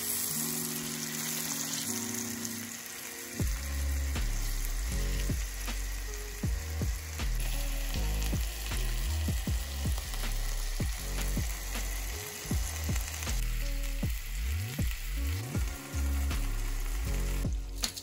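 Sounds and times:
chicken sizzling in oil: 0.0 - 18.0.

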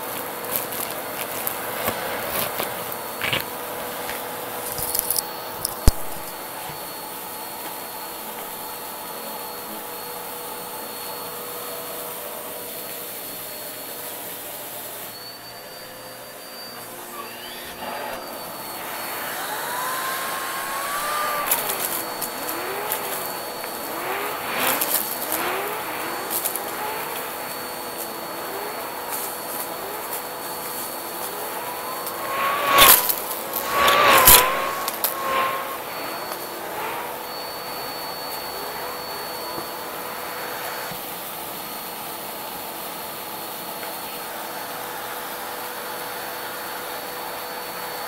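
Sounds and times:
debris crackling up vacuum hose: 0.0 - 6.3, 17.0 - 37.0
vacuum cleaner motor whine: 0.0 - 48.0
whistling tones from nozzle: 12.8 - 41.0.

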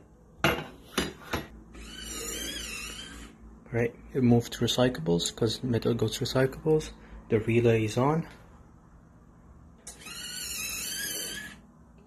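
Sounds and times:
motor whine: 1.7 - 3.4, 9.8 - 11.7.

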